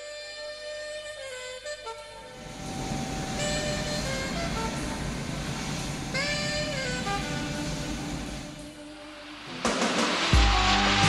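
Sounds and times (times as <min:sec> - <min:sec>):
jet engines rumbling: 0:02.2 - 0:11.0
background music: 0:06.8 - 0:11.0.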